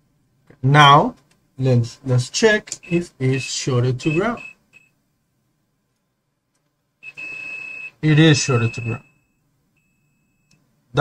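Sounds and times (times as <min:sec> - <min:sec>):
multimeter continuity beep: 0:02.8 - 0:05.0, 0:07.0 - 0:10.6.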